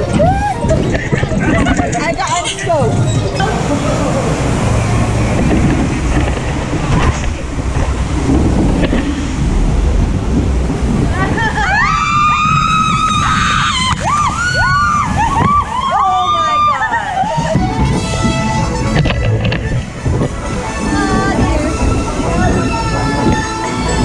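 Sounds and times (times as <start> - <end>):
riders screaming: 0.0 - 0.8
water rushing: 0.0 - 24.0
wind on microphone: 0.0 - 24.0.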